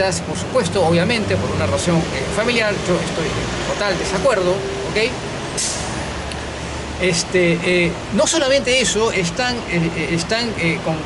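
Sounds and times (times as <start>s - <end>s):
heavy road traffic rumble: 0.0s - 11.0s
short hiss: 5.6s - 6.0s.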